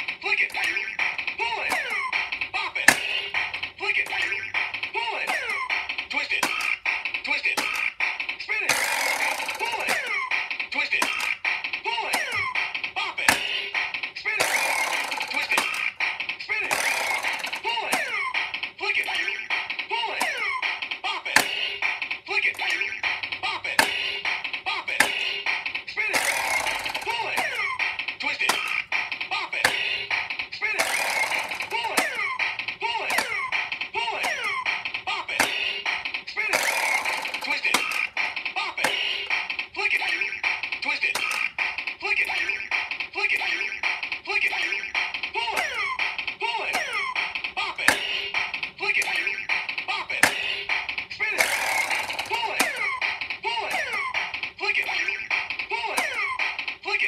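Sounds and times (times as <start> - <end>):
toy ticking beat: 0.0 - 57.0
recorded voice calling commands: 0.2 - 3.0, 11.8 - 13.4, 24.6 - 25.1, 27.0 - 29.8, 31.6 - 35.5, 37.4 - 39.2, 43.2 - 48.2, 48.8 - 50.4.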